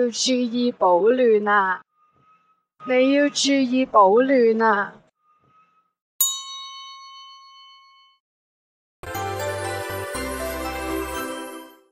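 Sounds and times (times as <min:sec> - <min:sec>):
bright bell-like chime: 0:06.2 - 0:08.2.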